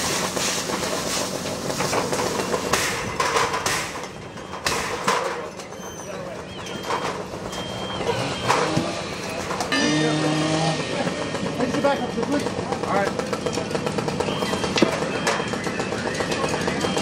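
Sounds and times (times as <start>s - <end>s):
diesel engine running: 0.0s - 17.0s
held tone: 4.1s - 11.7s, 13.2s - 17.0s
voices: 4.4s - 17.0s.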